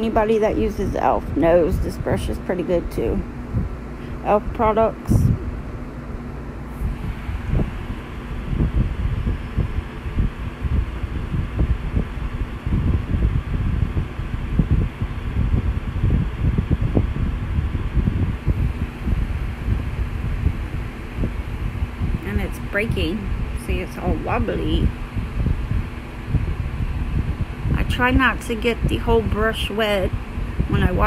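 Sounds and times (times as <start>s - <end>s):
low rumble of wind buffeting: 0.0s - 31.0s.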